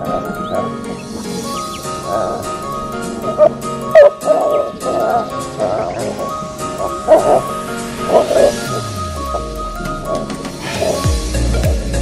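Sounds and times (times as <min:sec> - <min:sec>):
background music: 0:00.0 - 0:12.0
dog barking and yelping: 0:02.0 - 0:11.0.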